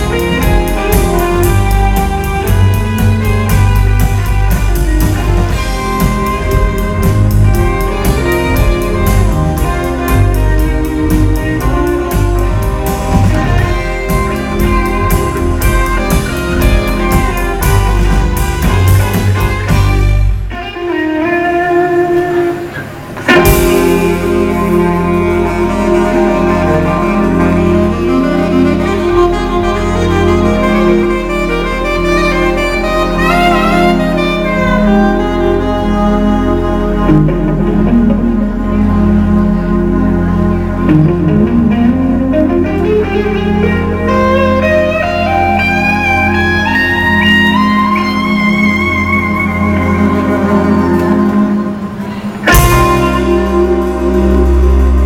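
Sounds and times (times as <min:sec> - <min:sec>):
steady low bass: 0:00.0 - 0:20.6, 0:21.4 - 0:55.0
blues-rock band playing: 0:00.0 - 0:55.0
electric guitar lead: 0:00.0 - 0:55.0.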